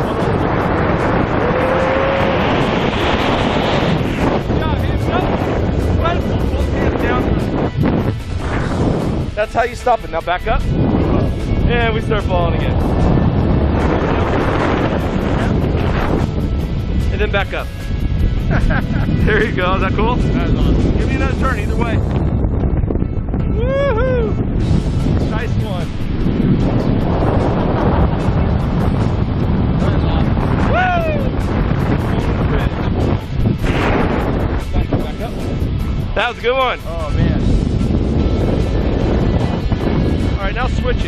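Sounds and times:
wind rushing over microphone: 0.0 - 41.0.

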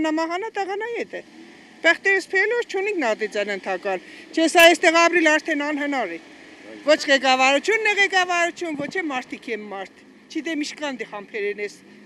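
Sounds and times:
woman speaking: 0.0 - 1.2, 1.8 - 6.2, 6.8 - 11.8.

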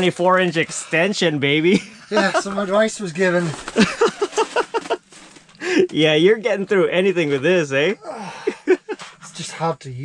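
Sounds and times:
man laughing: 1.7 - 2.7, 3.7 - 5.0, 8.0 - 9.1.

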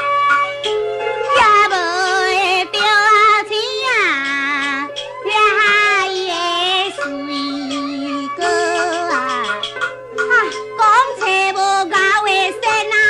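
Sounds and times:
instrumental accompaniment: 0.0 - 13.0
high-pitched voice singing opera: 1.4 - 9.6.

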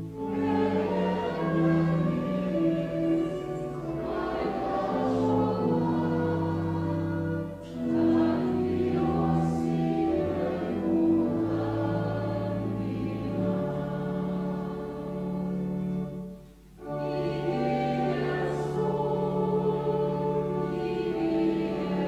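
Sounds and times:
congregation singing a hymn: 0.0 - 22.0.

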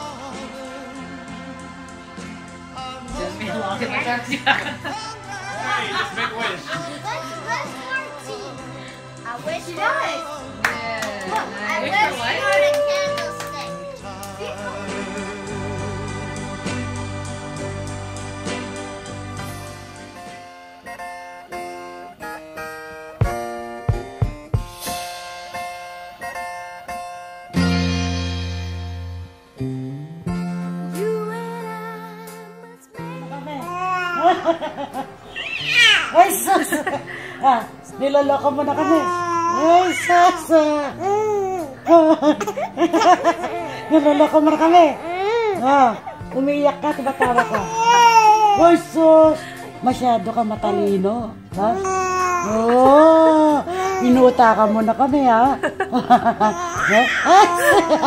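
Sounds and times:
music: 0.0 - 58.0
baby squealing and cooing: 33.7 - 34.2, 35.2 - 36.2, 38.7 - 42.8, 43.4 - 46.3, 47.3 - 48.6, 51.8 - 52.7, 56.5 - 58.0.

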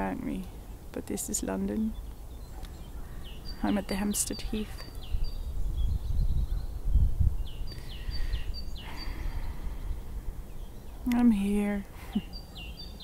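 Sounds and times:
small birds chirping: 0.0 - 13.0
wind buffeting microphone: 1.8 - 11.1.

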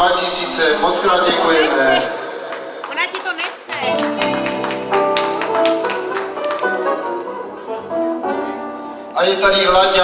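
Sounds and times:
live band playing: 0.2 - 9.2.

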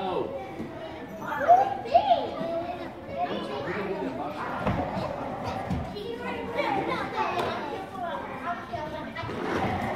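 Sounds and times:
children calling and chattering: 0.0 - 9.9.

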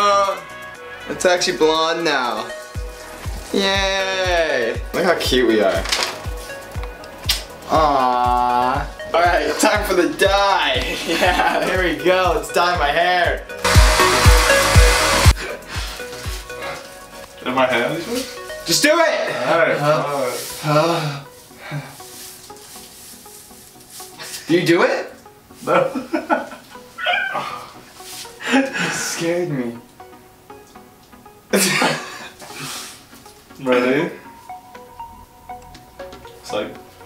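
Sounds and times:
music with kick-drum beat: 2.7 - 16.6
person laughing: 10.8 - 11.8, 31.5 - 32.3
hair dryer blowing: 13.6 - 15.4.

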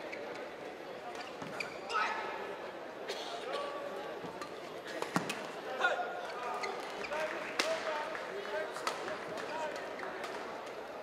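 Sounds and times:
murmur of voices: 0.0 - 11.0
shoe squeaks on court floor: 1.1 - 2.2, 6.3 - 7.3.

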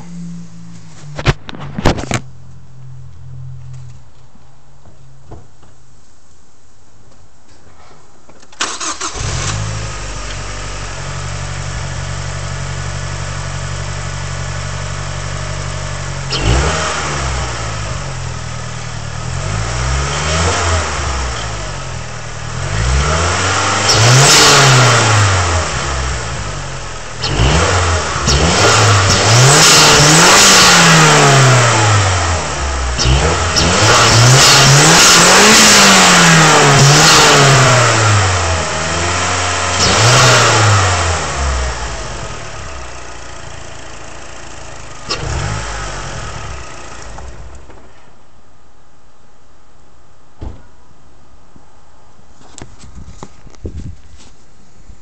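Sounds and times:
car engine idling and revving: 0.0 - 5.3, 8.6 - 48.4.

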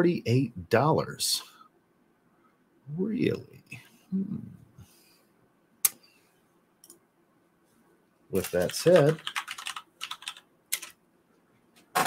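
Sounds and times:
computer keyboard typing: 8.4 - 11.0.

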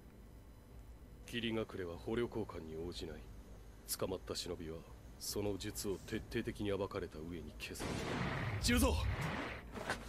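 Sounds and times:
deep boom: 7.8 - 9.6.

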